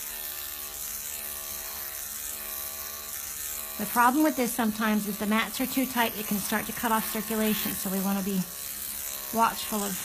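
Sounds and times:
electric clippers humming: 0.0s - 10.0s.

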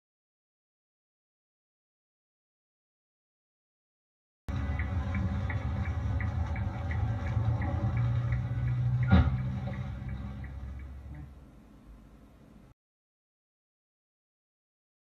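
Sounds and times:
light ticking: 4.5s - 11.5s
engine and road rumble: 4.5s - 12.7s
sharp collision knock: 9.0s - 9.5s.

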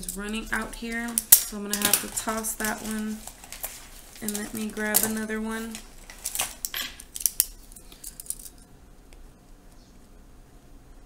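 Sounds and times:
plastic pens clicking and clattering: 0.0s - 8.6s.

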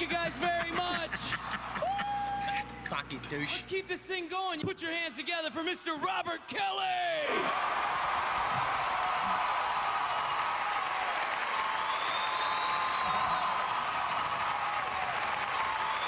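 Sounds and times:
audience applauding: 0.0s - 2.6s, 7.4s - 16.0s.

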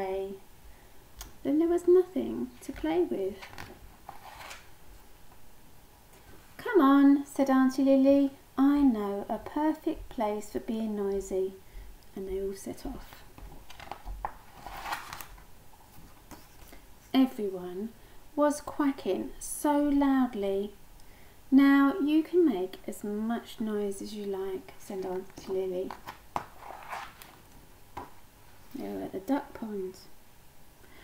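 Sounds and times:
book page rustling: 2.6s - 4.7s, 13.1s - 16.8s, 25.0s - 28.2s.

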